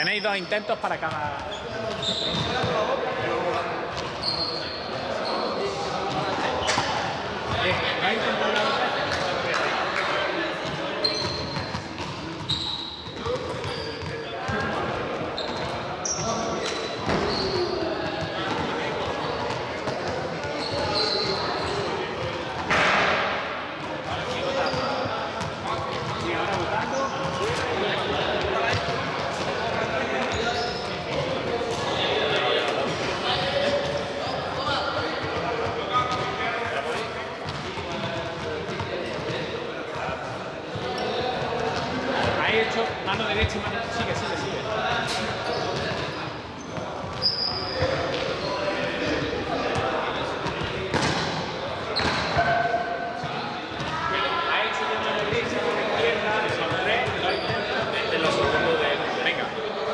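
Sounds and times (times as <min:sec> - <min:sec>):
balls bouncing: 0:08.5 - 0:33.1, 0:37.4 - 0:44.1, 0:49.7 - 0:51.4.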